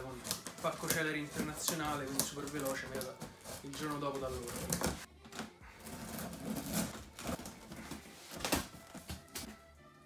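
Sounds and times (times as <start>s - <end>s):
cardboard cracking and rustling: 0.0s - 5.1s, 5.8s - 9.5s.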